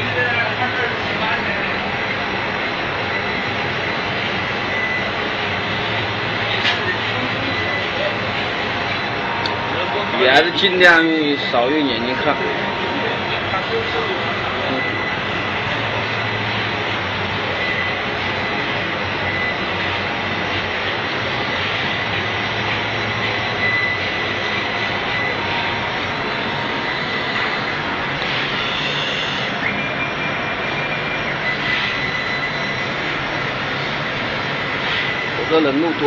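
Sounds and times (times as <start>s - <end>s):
laser cutting machinery running: 0.0s - 36.0s.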